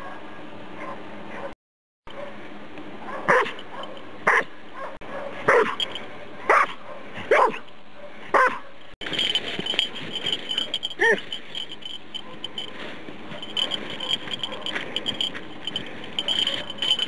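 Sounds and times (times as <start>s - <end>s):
dog barking: 0.0s - 2.4s, 3.0s - 8.8s, 10.6s - 11.3s, 12.2s - 12.7s, 13.3s - 15.0s, 16.2s - 17.0s.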